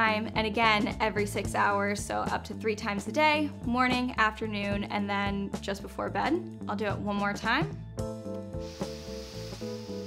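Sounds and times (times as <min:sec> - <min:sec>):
background music: 0:00.0 - 0:10.0
nasal spray hissing: 0:08.6 - 0:10.0.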